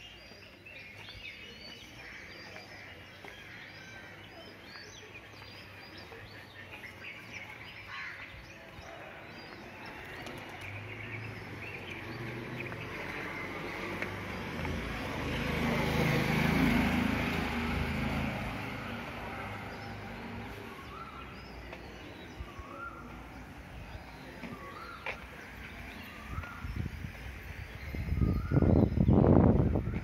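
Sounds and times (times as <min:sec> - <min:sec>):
birds chirping: 0:00.0 - 0:30.0
motor vehicle passing: 0:10.0 - 0:21.8.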